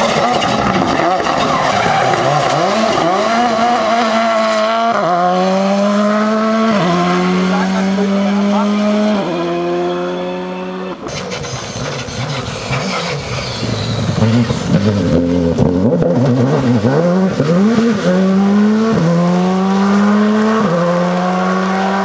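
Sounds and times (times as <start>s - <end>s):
rally car accelerating away: 0.0s - 22.0s
rally car engine revving: 0.0s - 22.0s
engine crackles: 11.0s - 21.8s.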